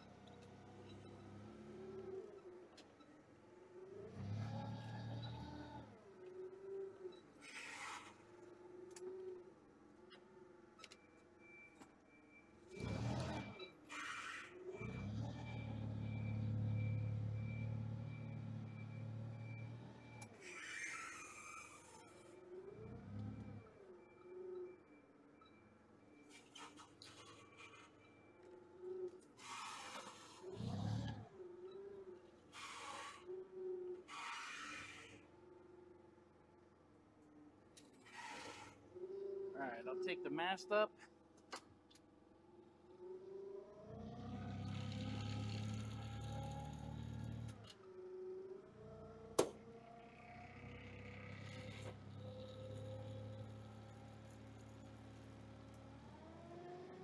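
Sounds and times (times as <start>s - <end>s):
forklift engine running: 14.7s - 20.3s.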